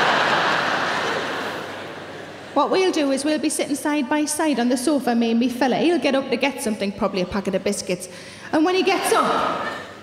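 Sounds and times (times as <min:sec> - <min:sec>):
audience laughing: 0:00.0 - 0:02.6.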